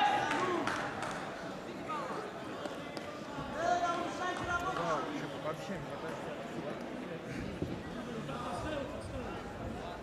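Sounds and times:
large hall noise: 0.0s - 10.0s.

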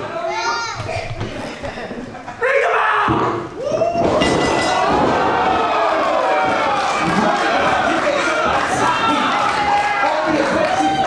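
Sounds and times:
crowd noise in a hall: 0.0s - 11.0s.

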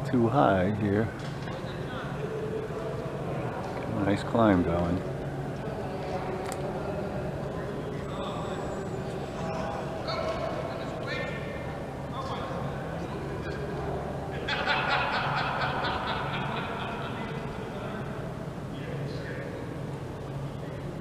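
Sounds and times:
people talking in a hall: 0.0s - 21.0s
steady low hum: 0.0s - 21.0s.

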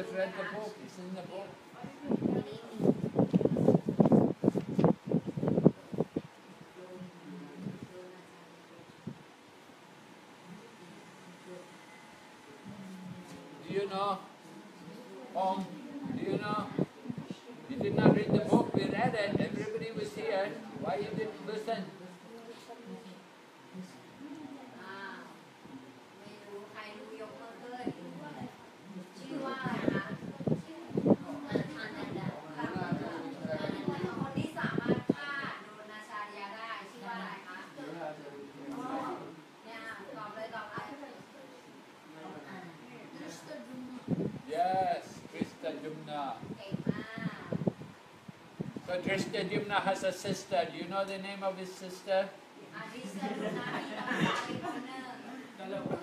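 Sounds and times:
quiet murmur: 0.0s - 56.0s
faint children's voices: 26.2s - 37.8s.

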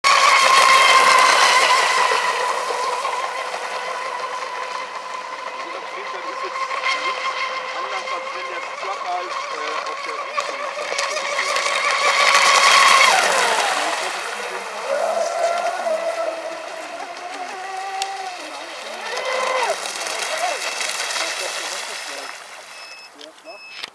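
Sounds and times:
electric boat motor whine: 0.0s - 23.9s.

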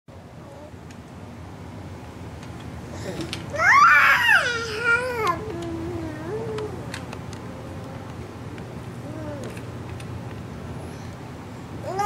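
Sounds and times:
baby crying: 3.6s - 6.5s.

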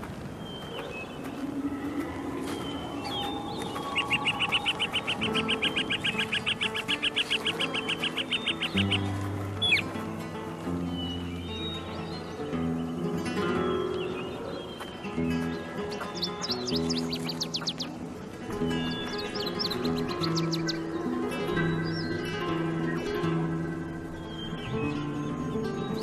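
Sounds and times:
bird chirping and trilling: 0.4s - 26.0s.

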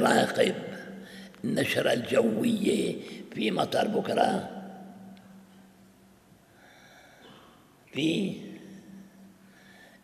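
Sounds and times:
man speaking: 0.0s - 4.7s, 7.9s - 8.6s.

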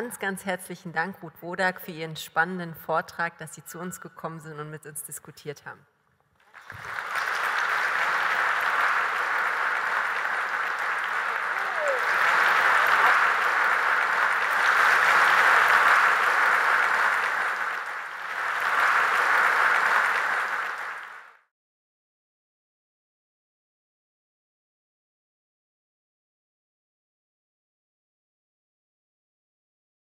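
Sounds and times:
audience applauding: 6.4s - 21.5s.

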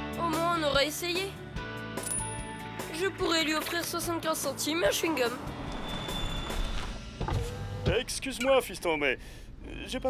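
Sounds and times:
background music: 0.0s - 9.0s
car power window motor whirring: 6.5s - 7.9s.

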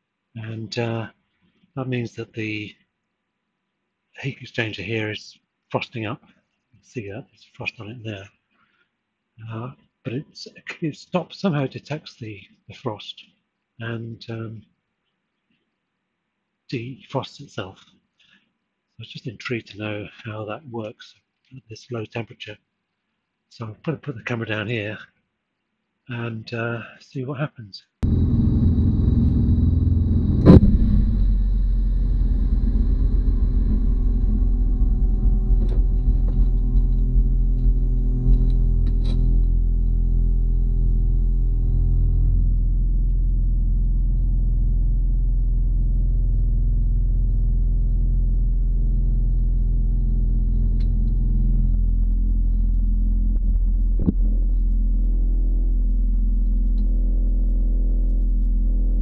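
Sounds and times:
heat pump humming: 28.0s - 52.3s.

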